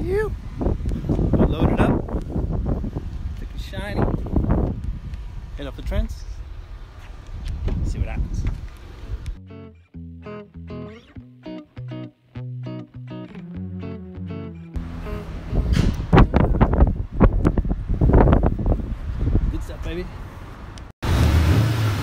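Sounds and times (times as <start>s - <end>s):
rough outdoor background noise: 0.0s - 20.9s
plucked guitar notes: 9.4s - 16.9s.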